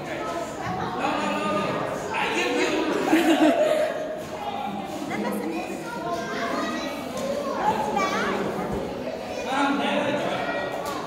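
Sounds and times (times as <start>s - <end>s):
children chattering in a hall: 0.0s - 11.0s.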